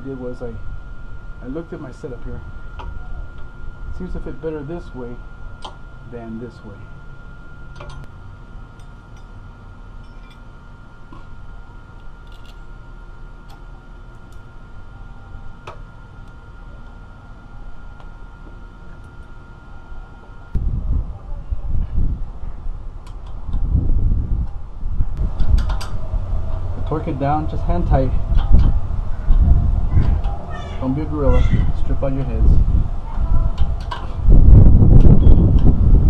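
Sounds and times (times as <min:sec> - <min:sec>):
low background hum: 0:00.0 - 0:36.0
uneven low rumble: 0:00.0 - 0:36.0.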